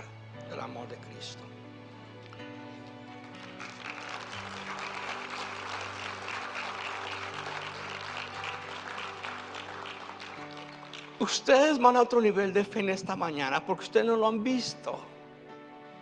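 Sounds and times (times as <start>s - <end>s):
soft music of held chords: 0.0s - 16.0s
congregation applauding: 3.1s - 12.3s.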